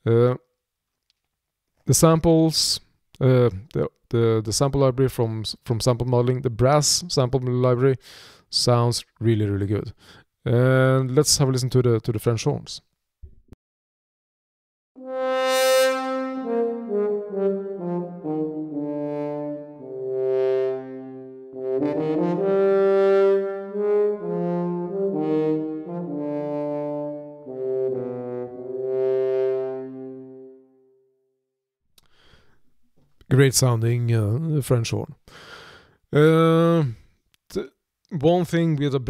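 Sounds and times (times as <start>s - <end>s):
french horns playing legato: 15.0s - 30.8s.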